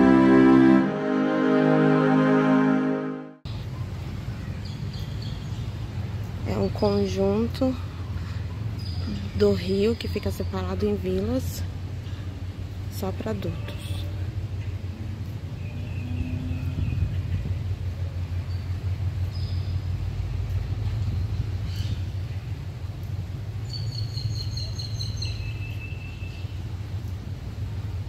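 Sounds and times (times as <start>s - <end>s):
wind buffeting microphone: 16.0s - 17.9s.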